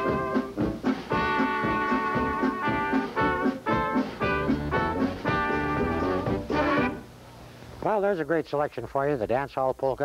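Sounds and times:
polka band playing: 0:00.0 - 0:07.1.

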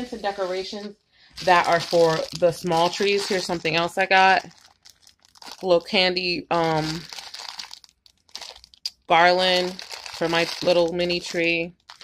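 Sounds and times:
plastic packaging crinkling: 0:01.4 - 0:12.0.

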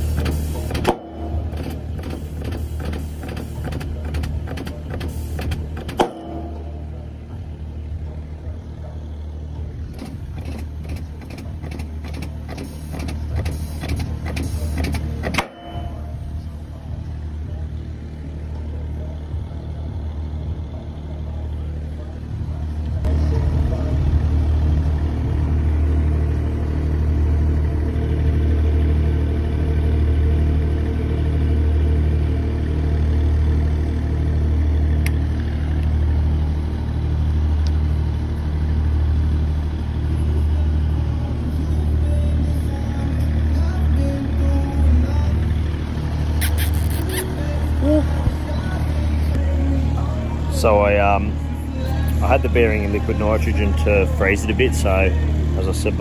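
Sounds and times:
machine humming: 0:00.0 - 0:08.6.

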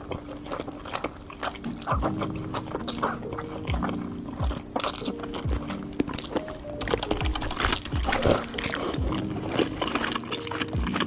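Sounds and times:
slurping noodles: 0:00.0 - 0:11.0
wet clicky chewing: 0:00.0 - 0:11.0
music with low beat: 0:01.5 - 0:11.0.

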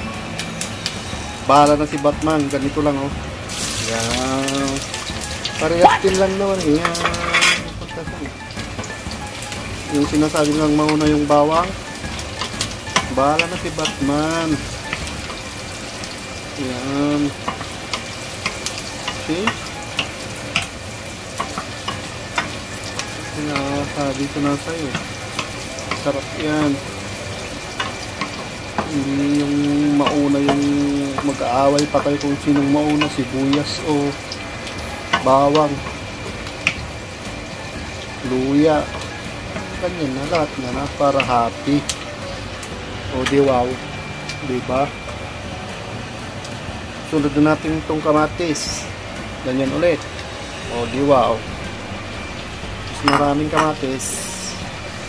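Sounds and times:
food sizzling in a frying pan: 0:00.0 - 0:55.0.

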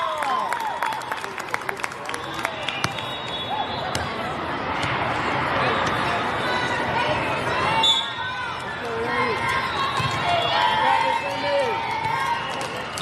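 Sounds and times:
short high whistle: 0:02.7 - 0:03.9.

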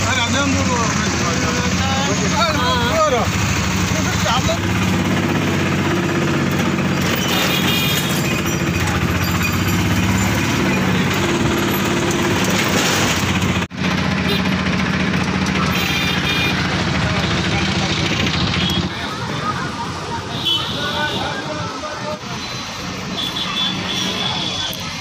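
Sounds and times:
auto-rickshaw engine running: 0:00.0 - 0:25.0.

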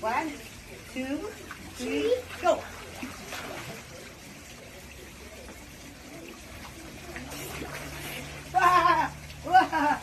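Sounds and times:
pool water trickling and lapping: 0:00.0 - 0:10.0.

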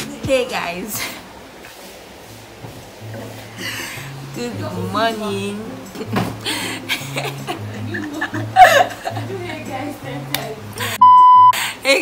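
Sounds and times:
censor bleep: 0:11.0 - 0:11.6.

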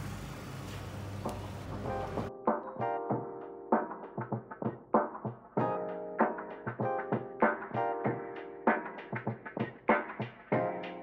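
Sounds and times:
faint music: 0:00.0 - 0:04.3.

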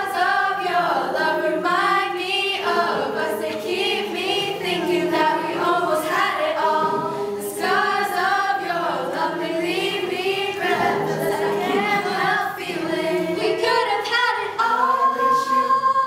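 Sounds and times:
choir singing unaccompanied: 0:00.0 - 0:16.0.

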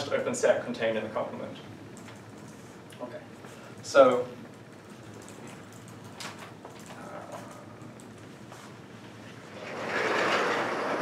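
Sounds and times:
chalkboard panels rolling on tracks: 0:09.5 - 0:11.0.

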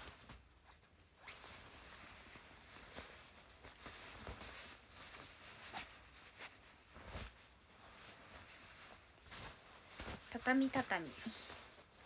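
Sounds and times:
fabric garment rustling: 0:00.0 - 0:12.0
soft fabric swish: 0:00.0 - 0:12.0.

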